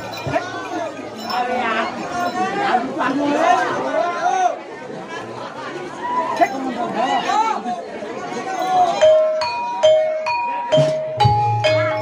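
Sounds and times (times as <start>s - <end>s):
voices chattering: 0.0s - 12.0s
metallophones struck with mallets: 8.7s - 12.0s.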